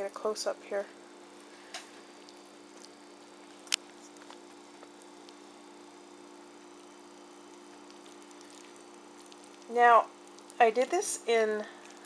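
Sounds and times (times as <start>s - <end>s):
steady low hum: 0.0s - 12.0s
fork ticking in puree: 7.8s - 10.6s.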